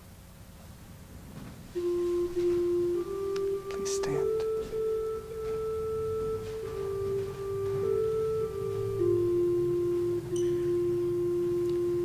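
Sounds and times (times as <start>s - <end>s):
organ holding flute-like note: 1.7s - 12.0s.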